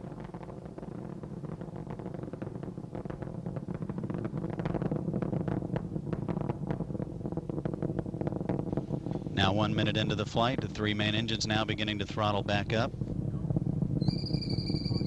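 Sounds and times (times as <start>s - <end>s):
rocket engines roaring: 0.0s - 15.0s.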